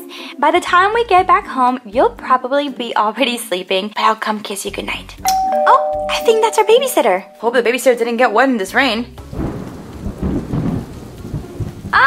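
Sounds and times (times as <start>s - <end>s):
rain: 8.8s - 12.0s
low rumble of thunder: 9.2s - 12.0s.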